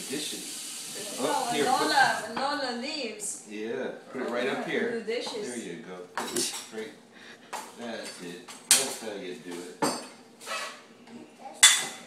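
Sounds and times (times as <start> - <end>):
dishes clattering: 6.2 - 6.8, 7.6 - 10.3, 11.6 - 12.0.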